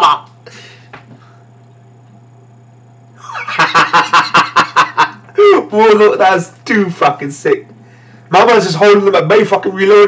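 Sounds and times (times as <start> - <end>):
man laughing hard: 0.0 - 0.3, 3.2 - 5.7
faint low hum: 0.0 - 10.0.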